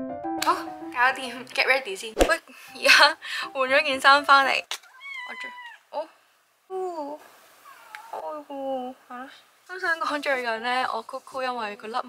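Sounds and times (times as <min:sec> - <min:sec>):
cat meowing: 0:04.8 - 0:05.9.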